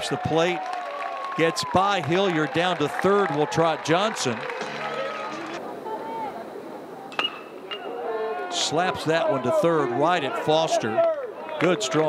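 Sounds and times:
crowd murmur: 0:02.6 - 0:12.0
metal bat hitting ball: 0:07.1 - 0:08.0.

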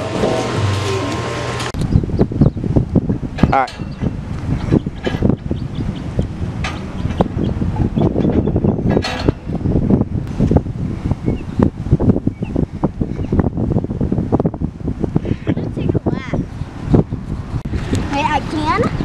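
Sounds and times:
gusty wind buffeting microphone: 0:00.0 - 0:19.0.

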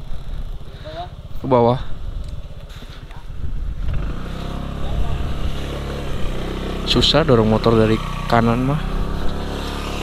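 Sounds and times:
motorcycle engine idling: 0:00.0 - 0:10.0
steady engine hum: 0:00.0 - 0:10.0.

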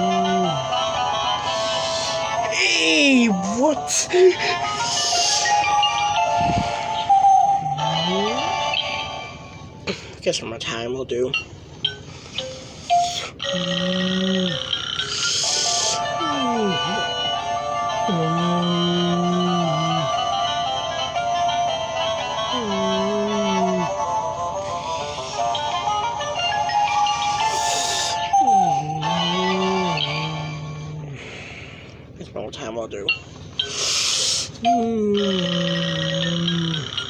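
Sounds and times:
electronic toy tune: 0:00.0 - 0:09.7, 0:11.4 - 0:31.0, 0:33.1 - 0:37.0.

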